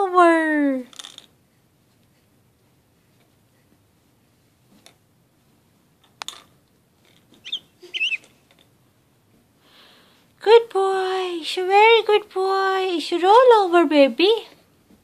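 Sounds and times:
baby squealing: 0:07.4 - 0:08.3.

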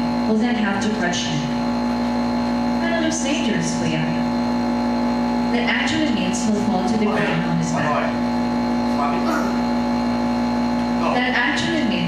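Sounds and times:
loud steady hum: 0:00.0 - 0:12.0.

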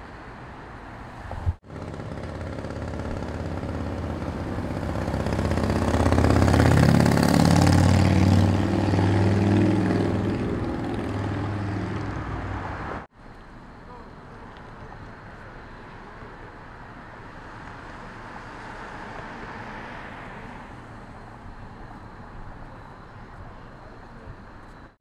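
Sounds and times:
vehicle driving past: 0:01.1 - 0:13.1.

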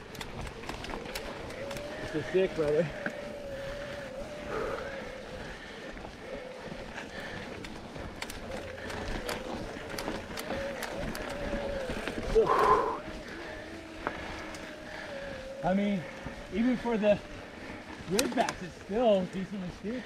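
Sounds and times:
electric bike motor whining: 0:00.0 - 0:20.0
tyres crunching over rocks: 0:00.0 - 0:20.0.

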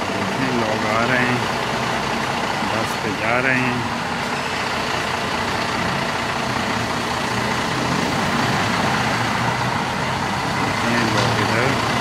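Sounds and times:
bus engine running: 0:00.0 - 0:12.0
cars passing: 0:00.0 - 0:12.0
road rush: 0:00.0 - 0:12.0.

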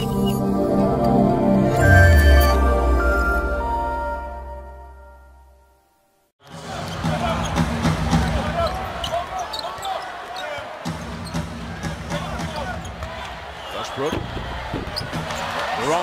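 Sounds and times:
intro music: 0:00.0 - 0:06.7
sneaker squeaks: 0:08.6 - 0:11.5.

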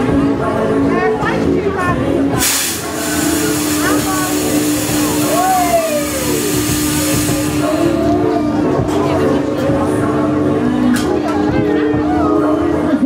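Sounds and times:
fog jets hissing: 0:02.4 - 0:08.0.

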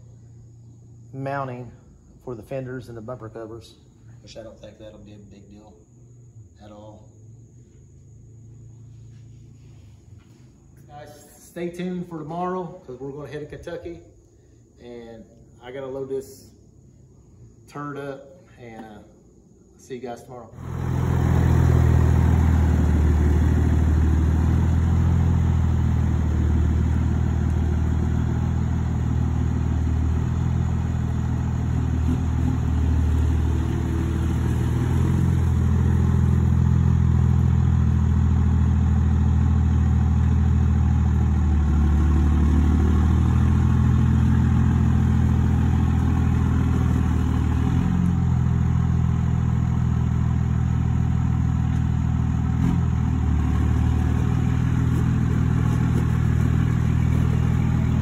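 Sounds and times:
vehicle engine running: 0:20.6 - 0:58.0.

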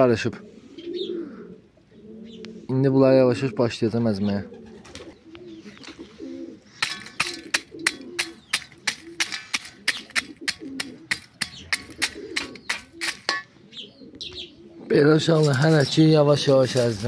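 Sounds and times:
pigeons cooing: 0:00.0 - 0:17.0
hammer crushing charcoal in a pot: 0:06.8 - 0:13.5, 0:15.2 - 0:17.0.

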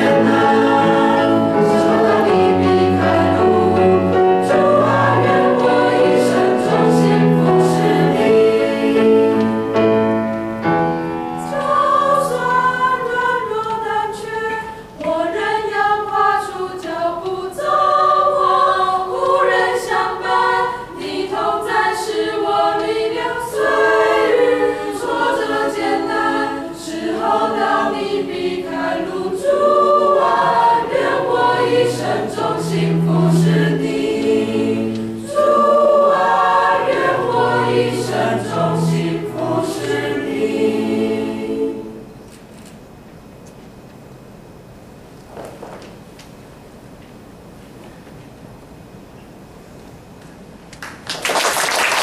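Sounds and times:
choir singing a hymn: 0:00.0 - 0:42.3.

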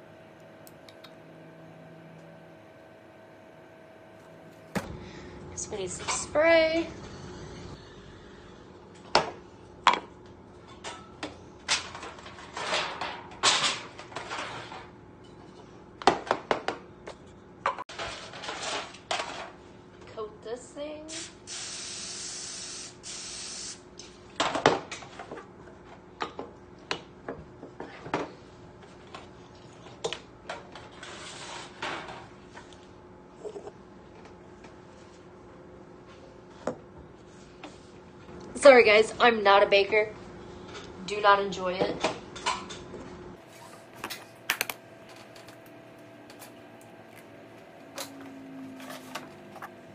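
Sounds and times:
aerosol spray hissing: 0:21.1 - 0:23.8.

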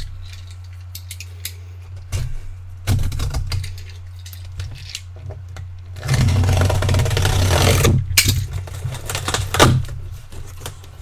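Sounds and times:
tape tearing from cardboard: 0:06.0 - 0:09.9.

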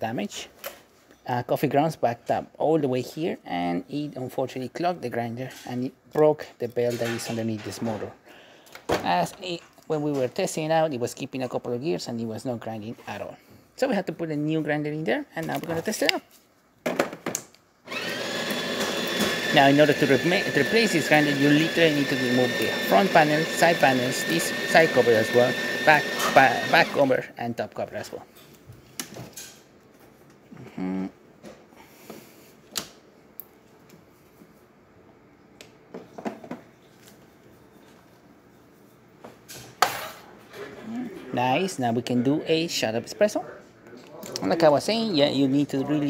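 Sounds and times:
grinder motor whine: 0:17.9 - 0:27.2.

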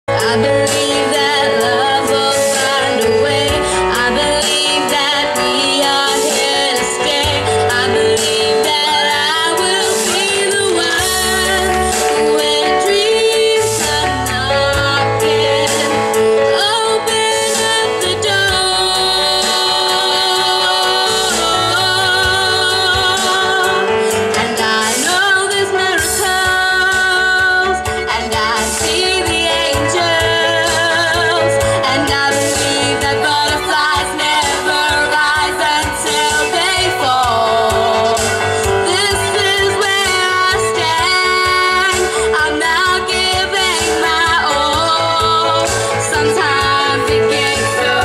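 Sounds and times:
girl singing into microphone: 0:00.1 - 0:48.0
instrumental backing music: 0:00.1 - 0:48.0.

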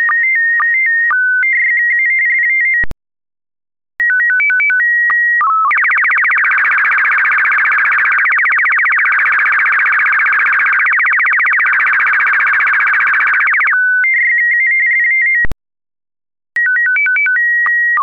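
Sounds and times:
held calibration tones: 0:05.7 - 0:13.8.

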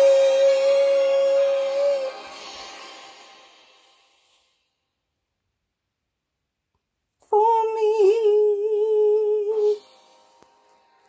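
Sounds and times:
woman singing long wordless note: 0:00.0 - 0:02.4, 0:07.2 - 0:09.9
faint sustained musical tones: 0:07.4 - 0:11.0.

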